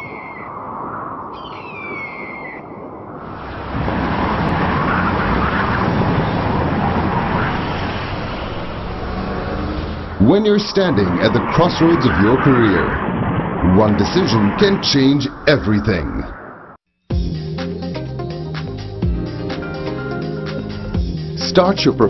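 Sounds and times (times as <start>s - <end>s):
descending bird cries: 0.0s - 0.6s, 1.2s - 2.8s
steady vehicle noise: 3.2s - 16.5s.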